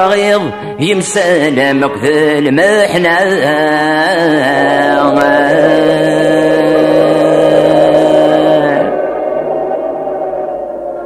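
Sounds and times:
man singing a long note: 0.0s - 10.6s.

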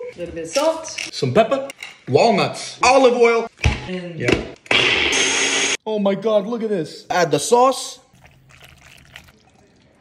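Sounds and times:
thick sauce pouring and dripping: 8.1s - 10.0s.

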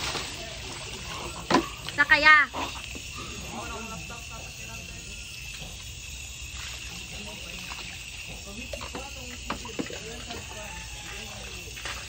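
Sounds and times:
faint background sounds: 0.0s - 12.0s.

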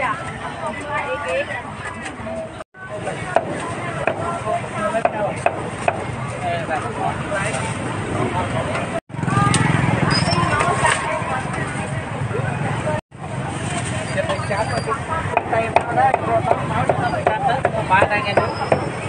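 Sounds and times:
market chatter: 0.0s - 19.0s
people talking: 0.0s - 19.0s.

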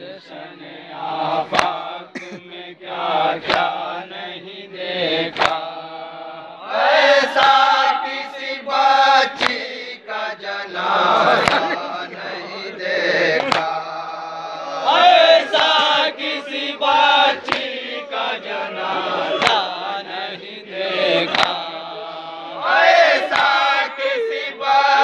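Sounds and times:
men chanting a lament in unison: 0.0s - 25.0s
hands slapping chests: 1.5s - 1.8s, 3.4s - 3.9s, 5.3s - 5.8s, 7.2s - 8.2s, 9.3s - 9.7s, 11.1s - 12.6s, 13.2s - 14.3s, 15.1s - 16.7s, 17.3s - 20.2s, 21.1s - 21.8s, 23.2s - 23.8s.

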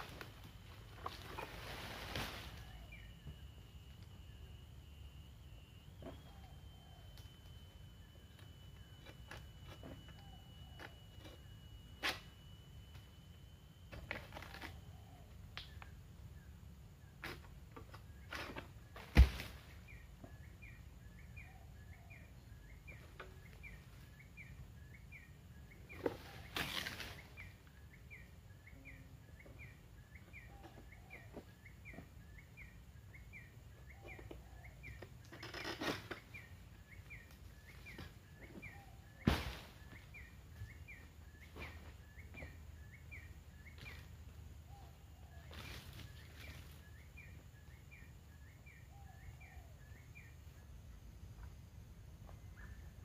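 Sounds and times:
bird or insect chirping: 0.0s - 53.0s
heavy thud of falling fruit: 19.0s - 19.7s, 39.2s - 40.0s
fronds crashing down: 39.2s - 40.1s.

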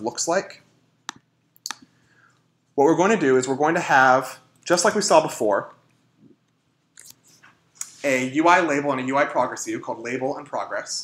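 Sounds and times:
person speaking: 2.6s - 11.0s.

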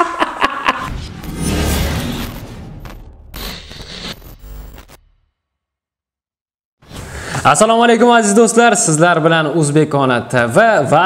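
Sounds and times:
noisy glitch burst: 0.8s - 5.3s.

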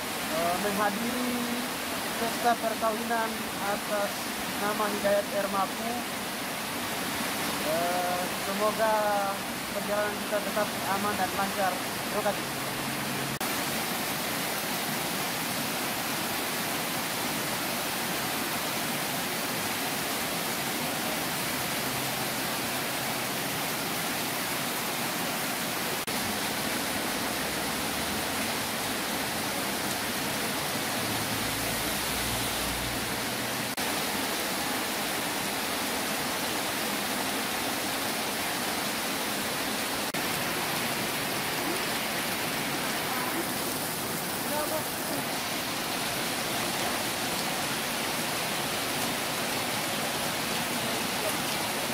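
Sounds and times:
heavy rain falling: 0.0s - 51.9s.

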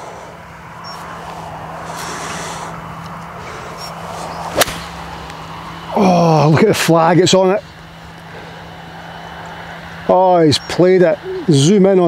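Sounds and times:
steady low hum: 0.0s - 12.0s
golf club striking ball: 4.5s - 5.4s.

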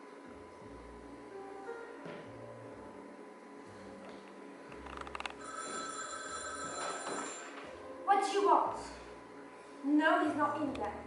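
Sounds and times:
telephone bell ringing: 5.4s - 7.8s.

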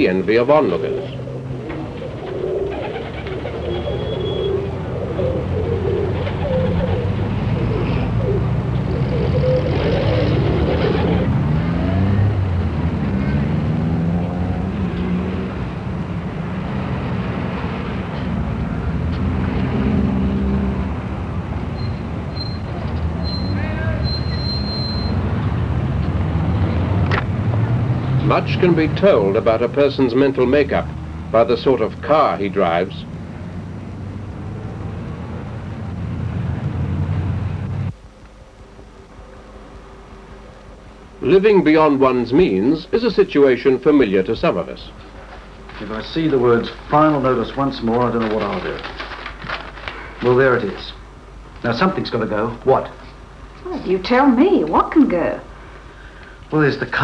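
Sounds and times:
car engines passing and accelerating: 0.0s - 54.8s
street background noise: 0.0s - 57.0s.

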